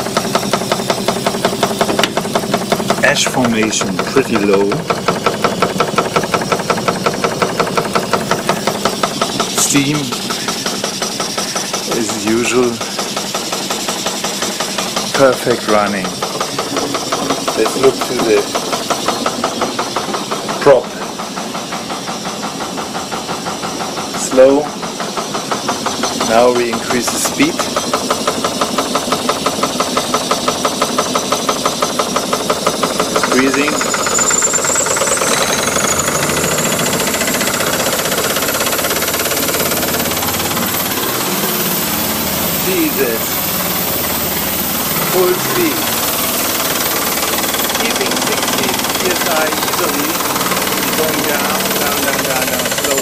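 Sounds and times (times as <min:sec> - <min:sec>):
steam engine running: 0:00.0 - 0:53.0.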